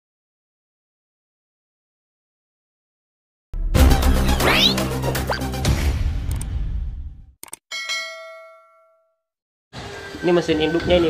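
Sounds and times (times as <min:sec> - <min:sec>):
intro music: 0:03.6 - 0:07.1
bright bell ding: 0:07.7 - 0:09.2.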